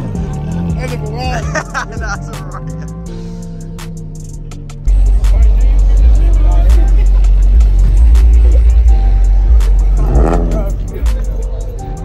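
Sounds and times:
car engine rumbling: 0.0 - 12.0
music playing: 0.0 - 12.0.

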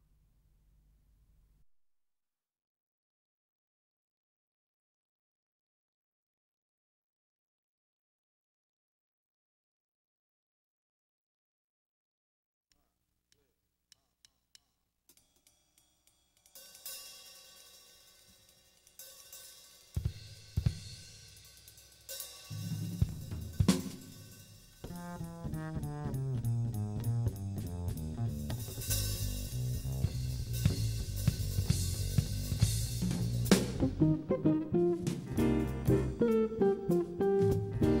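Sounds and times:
drum kit with cymbals: 15.1 - 34.2, 34.9 - 38.0
bass line: 24.9 - 38.0.

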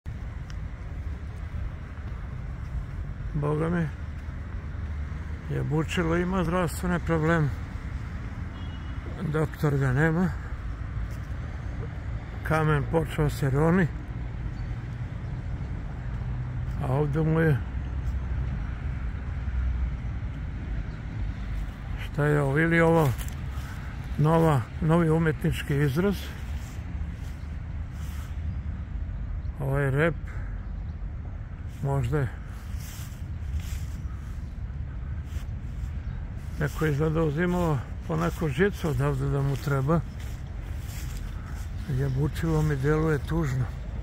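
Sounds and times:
low outdoor rumble: 9.2 - 44.0.

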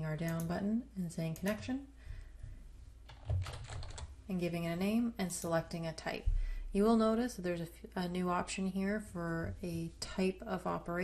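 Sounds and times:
computer keyboard typing: 3.1 - 4.1.

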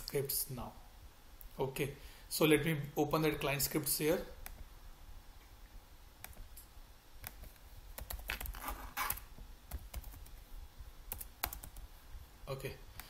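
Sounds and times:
computer keyboard typing: 7.2 - 10.4, 11.1 - 11.8.

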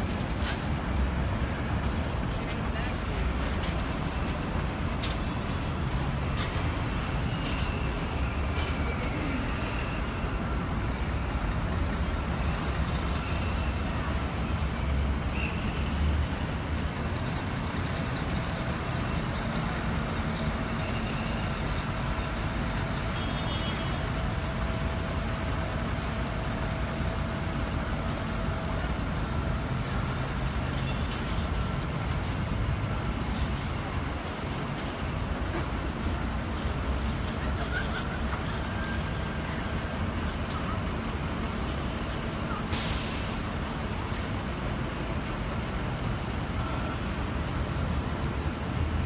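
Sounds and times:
heavy vehicle low rumble: 0.0 - 15.2, 16.1 - 49.0
city street traffic: 0.0 - 49.0.

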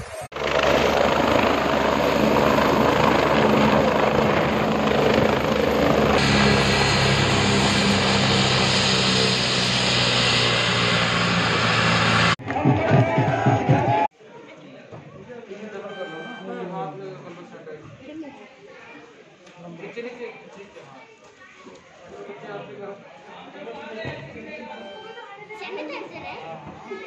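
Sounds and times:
helicopter turbines and rotor: 0.0 - 12.4.

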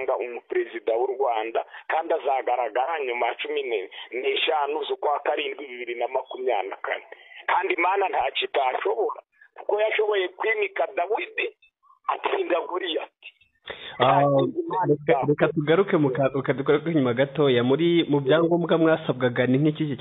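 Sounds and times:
person talking over telephone: 0.0 - 19.1.

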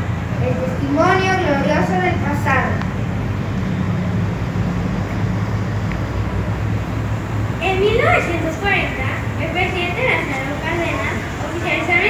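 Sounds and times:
steady low hum and rumble: 0.0 - 12.0.

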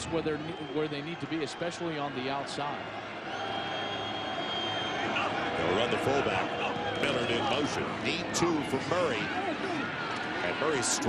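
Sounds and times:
stadium background noise: 0.0 - 11.0.

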